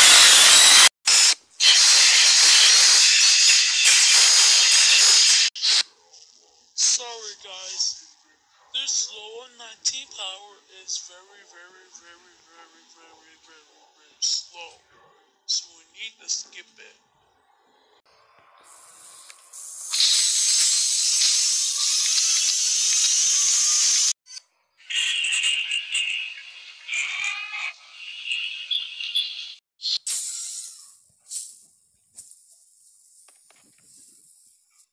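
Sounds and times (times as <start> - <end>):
high-pitched hiss-like noise: 18.6 - 24.1, 29.9 - 34.6.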